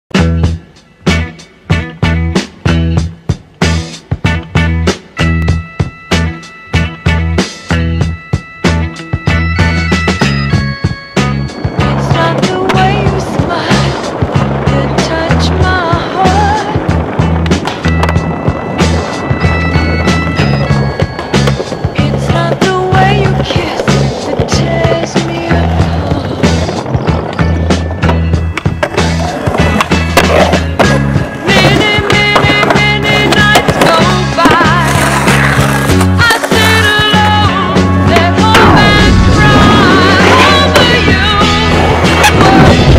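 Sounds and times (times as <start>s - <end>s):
skateboard wheels rolling on pavement: 0.2s - 42.9s
skateboard clacks: 11.2s - 42.9s.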